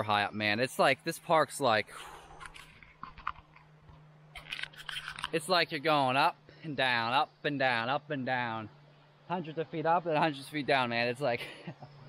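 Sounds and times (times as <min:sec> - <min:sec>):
faint steady hum: 0:00.0 - 0:12.0
camera handling clicks and rustles: 0:02.4 - 0:05.4.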